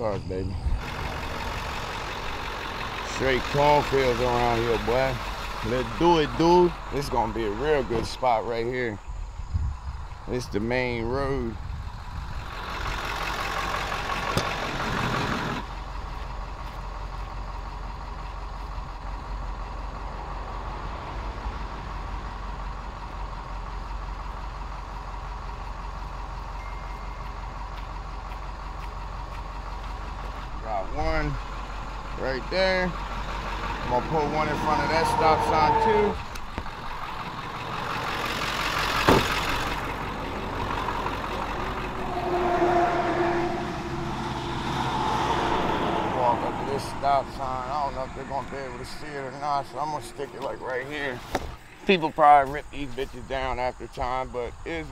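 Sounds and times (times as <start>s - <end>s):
truck engine idling: 0.0s - 54.9s
vehicle passing: 19.9s - 24.2s, 26.6s - 51.8s.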